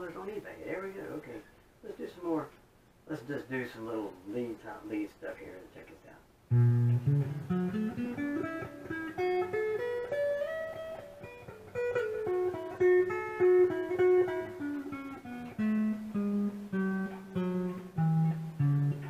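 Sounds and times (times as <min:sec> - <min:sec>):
electric guitar lead licks with delay: 0:06.5 - 0:19.0.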